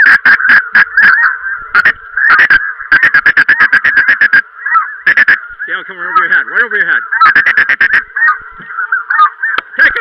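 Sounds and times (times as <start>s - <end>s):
geese honking: 0.0s - 10.0s.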